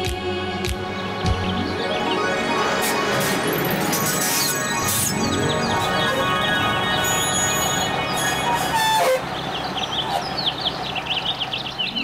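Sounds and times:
background music: 0.0 - 10.4
bus engine running: 0.0 - 12.0
bird chirps: 3.7 - 12.0.

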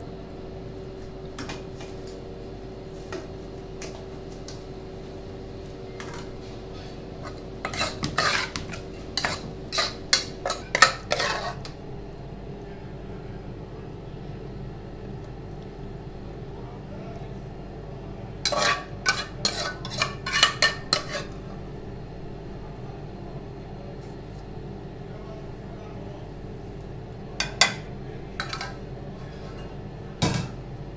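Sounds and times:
steady low hum: 0.0 - 30.9
metal spoon scraping a saucepan: 7.2 - 11.7, 18.5 - 21.4, 28.4 - 28.8.

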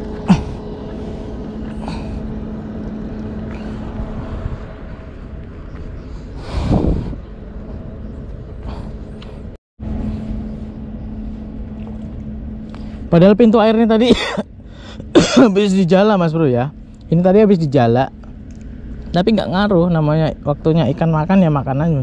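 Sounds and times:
low motor hum: 0.0 - 22.0.

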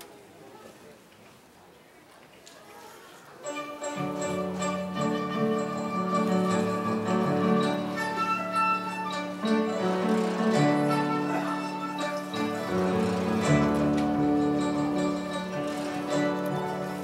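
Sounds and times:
bamboo flute playing: 3.4 - 9.9, 10.5 - 17.0
plucked zither: 3.5 - 17.0.

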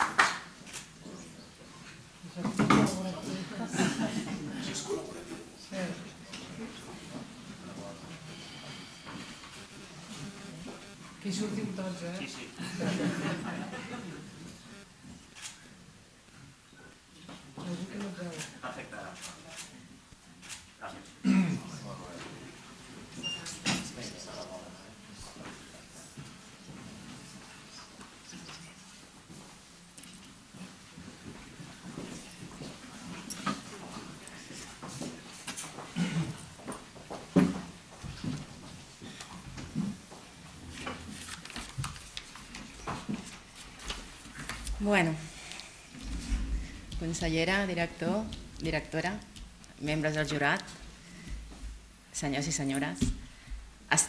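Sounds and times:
footsteps and shuffling: 25.2 - 51.9.

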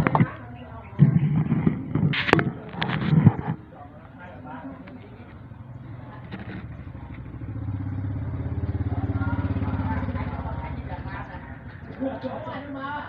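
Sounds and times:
motorcycle engine passing by: 4.2 - 13.0.

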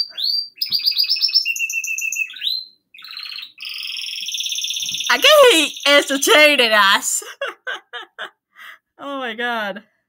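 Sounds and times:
pet bird singing: 0.0 - 6.7.

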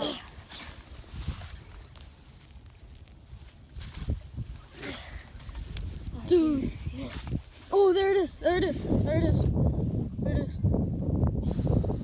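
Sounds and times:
rustles and clicks: 0.0 - 9.5.

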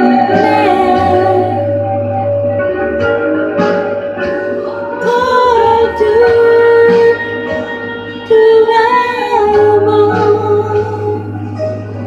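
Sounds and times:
woman singing into a microphone: 0.0 - 1.9, 4.8 - 12.0
accompanying music: 0.0 - 12.0.

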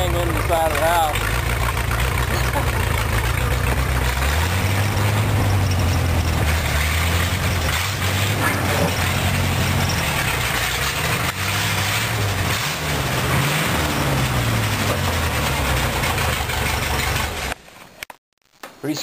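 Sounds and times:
car engine running at low speed: 0.0 - 17.6.

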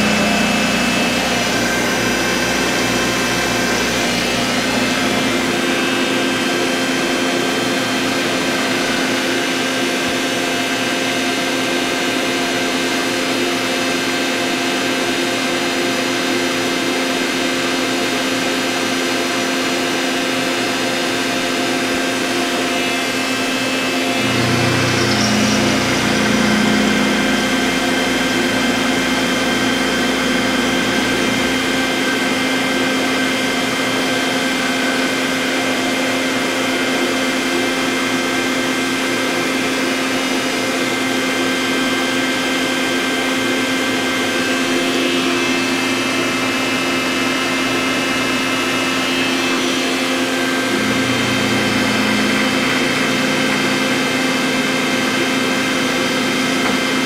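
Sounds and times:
deep machine hum: 0.0 - 10.6, 22.7 - 36.0, 44.2 - 57.0
milling spindle whine: 0.0 - 14.2, 17.2 - 37.6, 40.6 - 57.0.

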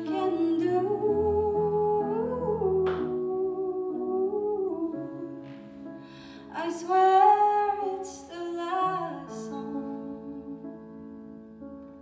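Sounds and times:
woman singing soft ballad: 0.0 - 5.7, 6.4 - 10.8
piano chords: 0.0 - 12.0.

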